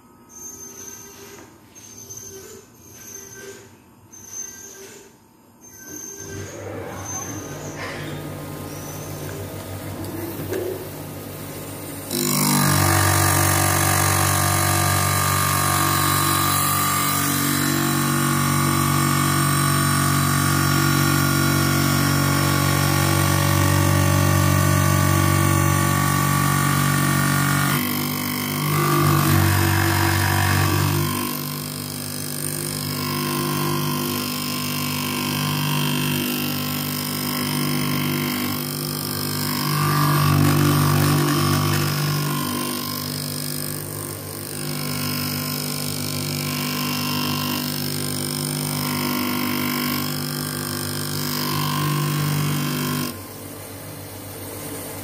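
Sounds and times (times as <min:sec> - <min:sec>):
lens edger motor humming: 0:08.6 - 0:53.2.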